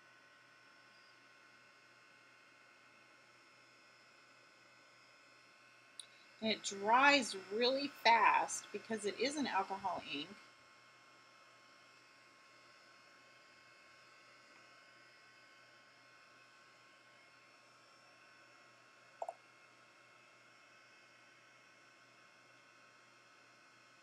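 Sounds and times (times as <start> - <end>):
heat tool whirring: 6.0 - 10.3.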